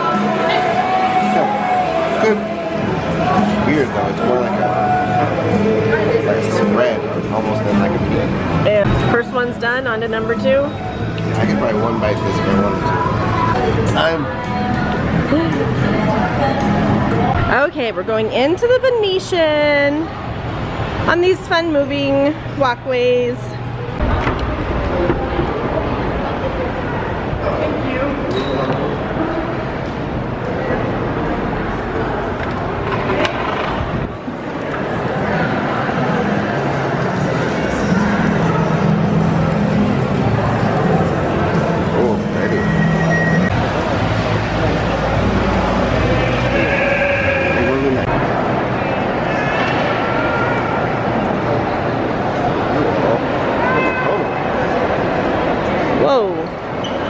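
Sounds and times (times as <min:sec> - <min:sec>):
crowd babble: 0:00.0 - 0:57.0
indistinct chatter: 0:00.0 - 0:57.0
steady noisy background din: 0:00.0 - 0:57.0.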